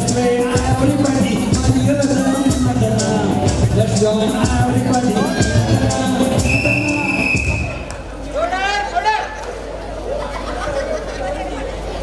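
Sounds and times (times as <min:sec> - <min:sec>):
recorded music: 0:00.0 - 0:07.9
crowd talking and calling out: 0:00.0 - 0:12.0.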